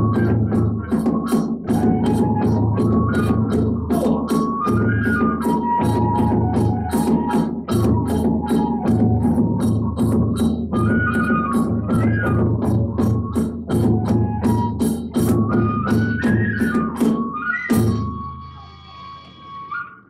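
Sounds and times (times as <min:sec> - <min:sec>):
drum beats: 0:00.0 - 0:18.4
bamboo flute melody: 0:00.0 - 0:20.0.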